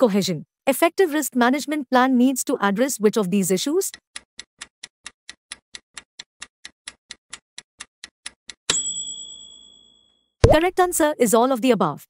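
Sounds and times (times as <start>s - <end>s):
clock ticking quickly: 3.9s - 8.8s.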